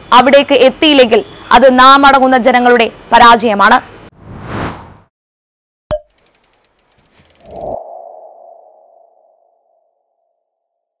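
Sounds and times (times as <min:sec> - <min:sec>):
quick run of ticks: 0:06.1 - 0:07.8
ringing ping-like tone: 0:07.8 - 0:10.3.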